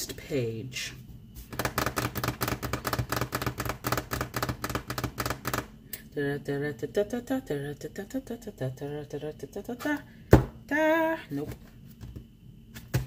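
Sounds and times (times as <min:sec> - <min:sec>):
person vocalizing rhythmically: 0:06.0 - 0:10.1, 0:10.7 - 0:11.4.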